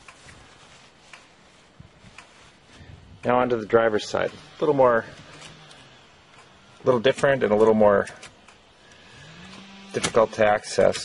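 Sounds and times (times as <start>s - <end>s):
man speaking: 3.2s - 5.2s, 6.8s - 8.2s, 10.0s - 11.0s.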